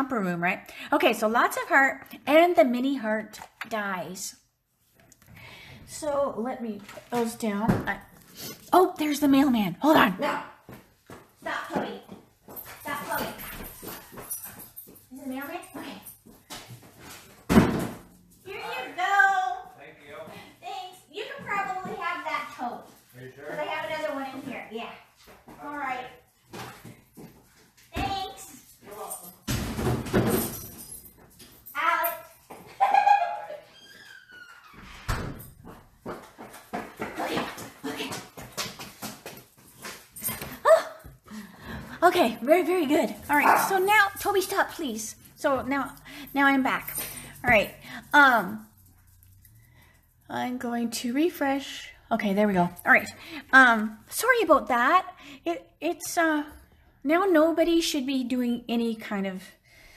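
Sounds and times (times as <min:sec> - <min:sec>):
people talking: 0:08.8 - 0:10.5, 0:42.0 - 0:48.6, 0:50.3 - 0:56.5.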